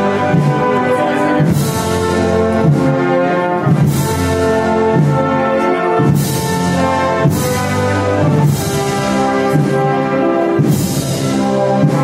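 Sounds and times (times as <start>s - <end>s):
brass band playing a slow march: 0.0s - 12.0s.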